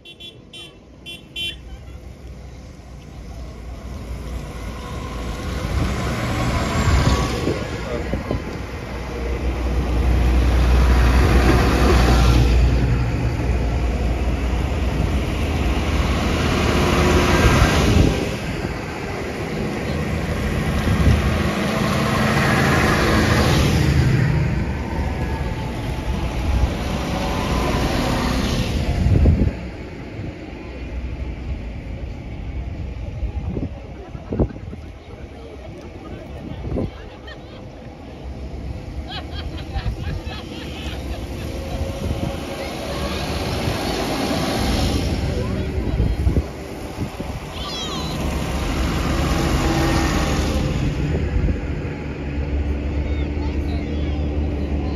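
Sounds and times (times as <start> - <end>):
diesel tractor engines passing: 0.0 - 54.9
tyre noise on wet road: 37.8 - 52.6.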